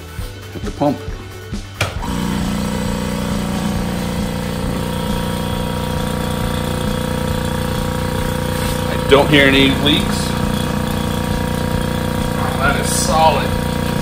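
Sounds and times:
vacuum pump humming: 0:01.8 - 0:14.0.

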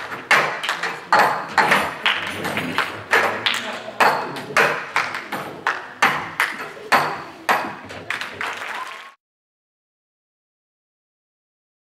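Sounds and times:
audience applause in large hall: 0:08.0 - 0:09.2.

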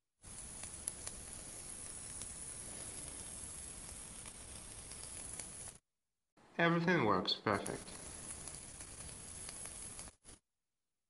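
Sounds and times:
e-cigarette coil sizzling hiss: 0:00.1 - 0:05.8, 0:07.5 - 0:10.4.

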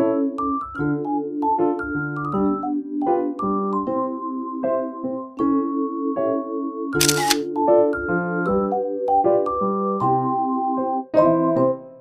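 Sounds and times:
soft piano music: 0:00.0 - 0:12.0
camera shutter click: 0:07.0 - 0:07.5.

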